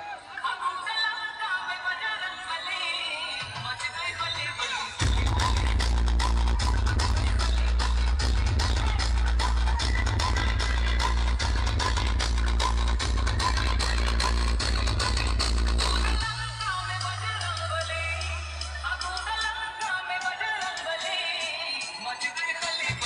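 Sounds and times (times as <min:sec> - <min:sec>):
electronic dance music: 0:00.0 - 0:23.0.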